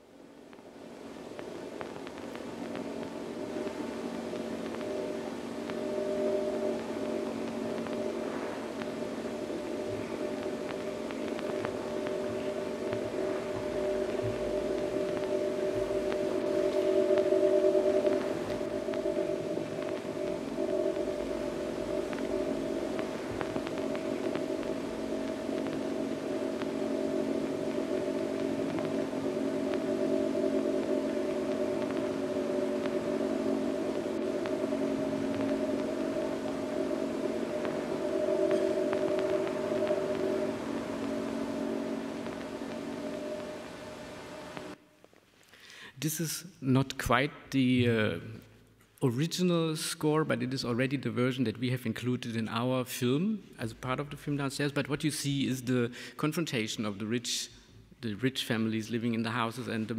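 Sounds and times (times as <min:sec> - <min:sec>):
droning film score music: 0:00.0 - 0:44.9.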